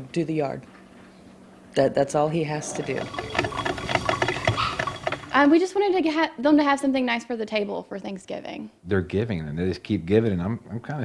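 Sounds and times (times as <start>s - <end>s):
coffee maker sputtering and gurgling: 2.0s - 6.1s.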